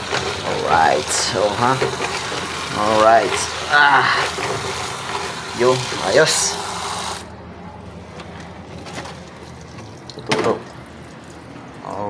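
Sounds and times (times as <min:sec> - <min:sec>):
faucet pouring into bucket: 0:00.0 - 0:07.2.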